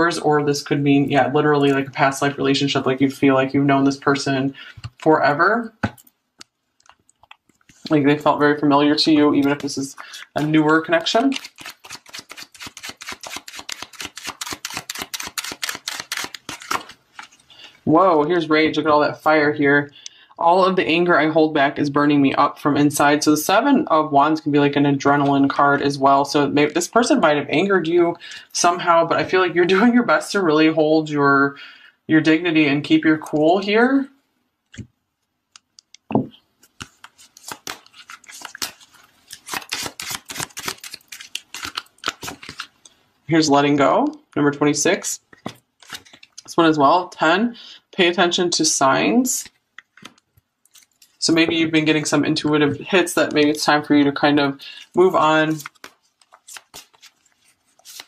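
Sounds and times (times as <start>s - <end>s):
cards being shuffled: 9.2s - 17.5s, 36.2s - 42.8s, 45.3s - 46.5s, 49.4s - 51.2s, 54.7s - 58.0s.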